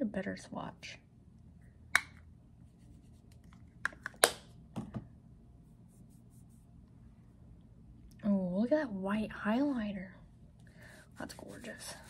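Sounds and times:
faint rubbing: 11.2s - 12.0s.

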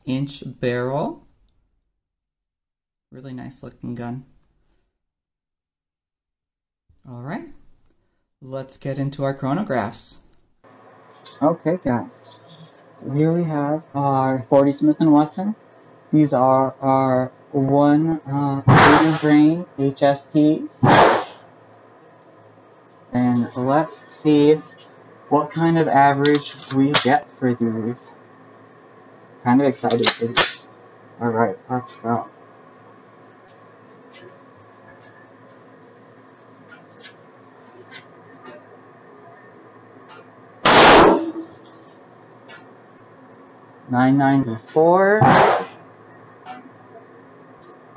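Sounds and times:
pistol shot: 18.7s - 19.4s, 20.8s - 21.4s, 40.7s - 41.4s, 45.2s - 45.8s.

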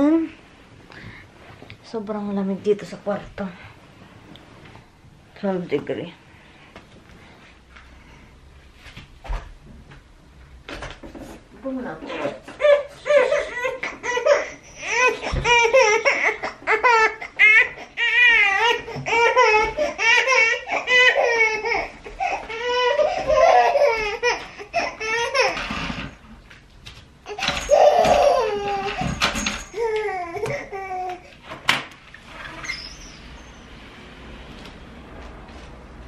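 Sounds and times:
baby laughing and squealing: 12.2s - 25.6s, 27.3s - 31.1s.

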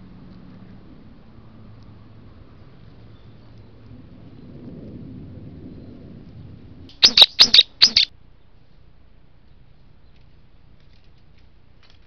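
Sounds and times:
bird shrill calls: 6.9s - 8.1s.

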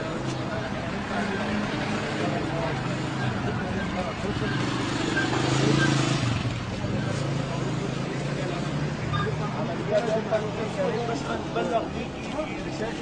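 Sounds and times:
men talking: 0.0s - 6.1s, 6.7s - 13.0s.

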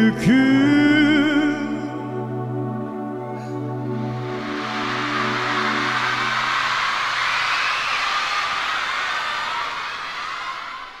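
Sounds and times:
band holding a chord: 1.5s - 7.8s
audience applause and cheering: 4.0s - 11.0s.

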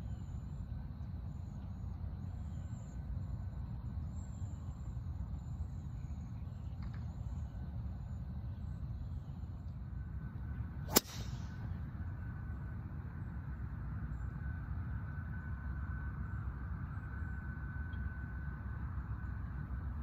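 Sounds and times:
golf driver striking ball: 10.9s - 11.4s.

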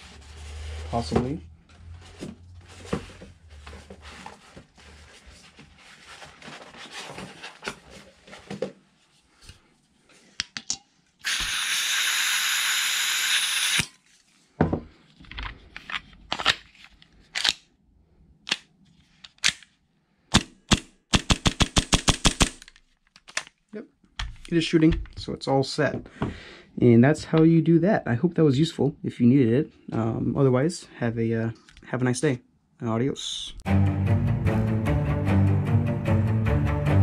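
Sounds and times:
gas can hissing: 11.2s - 13.9s
pistol firing sharp cracks: 20.4s - 22.6s.

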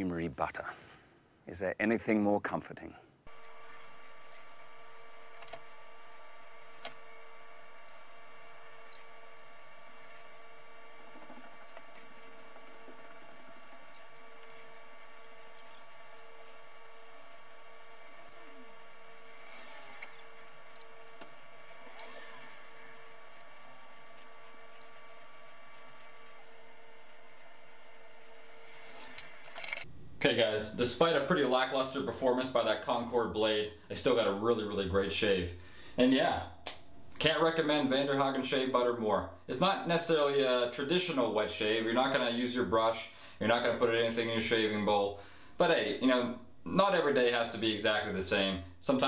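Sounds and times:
background hum with faint tones: 0.0s - 49.0s
razor scraping over scalp: 3.3s - 23.7s.

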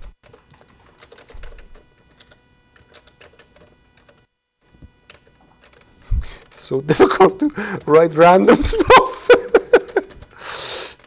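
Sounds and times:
typing on computer keyboard: 0.0s - 4.3s, 5.1s - 6.6s, 9.5s - 10.3s.

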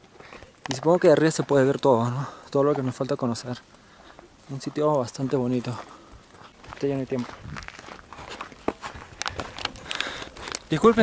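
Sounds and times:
footsteps on dirt path: 0.0s - 11.0s
camera handling rustling: 7.7s - 10.8s.

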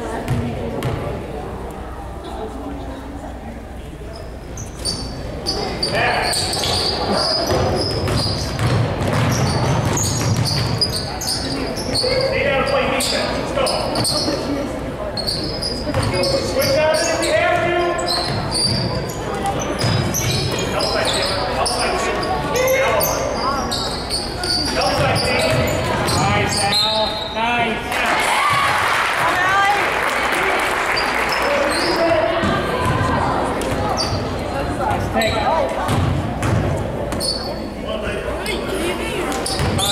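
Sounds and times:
spectators calling out and talking: 0.0s - 39.9s
basketball bouncing on hardwood: 7.5s - 10.8s.

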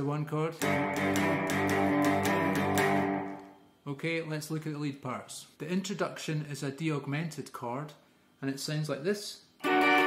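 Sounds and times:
electric guitar shuffle riff: 0.6s - 3.4s, 9.6s - 10.0s.

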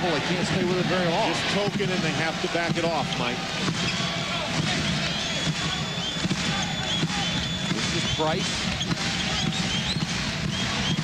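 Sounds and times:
arena crowd noise: 0.0s - 11.0s
basketball dribbling: 5.5s - 11.0s.

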